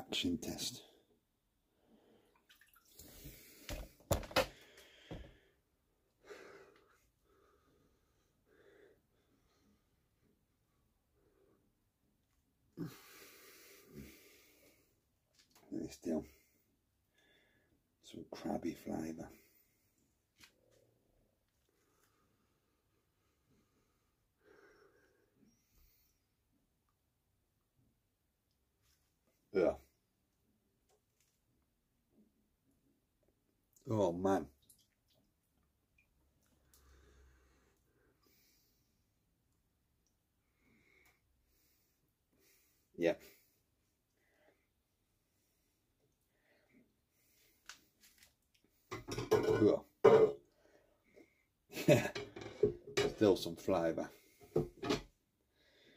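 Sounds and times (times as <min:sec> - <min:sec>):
water swishing and dripping: 0:02.3 - 0:03.8
faint breath: 0:03.0 - 0:05.6, 0:12.8 - 0:15.0, 0:36.6 - 0:39.0
soft breath: 0:36.6 - 0:39.0.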